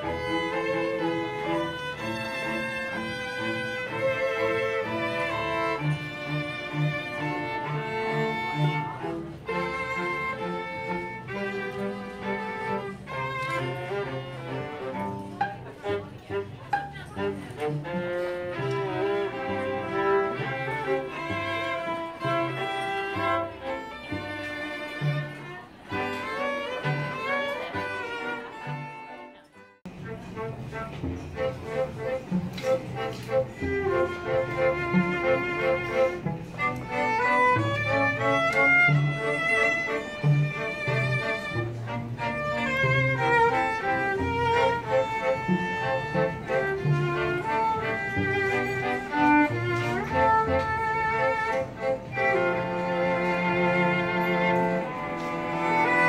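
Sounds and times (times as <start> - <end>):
string quartet playing: 0.0 - 56.0.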